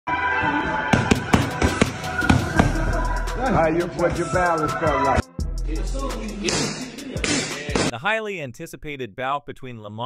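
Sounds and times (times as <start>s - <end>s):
music playing: 0.1s - 8.0s.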